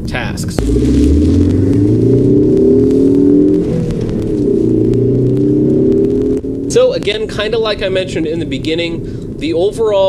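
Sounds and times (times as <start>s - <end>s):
car engine revving: 0.4s - 9.5s.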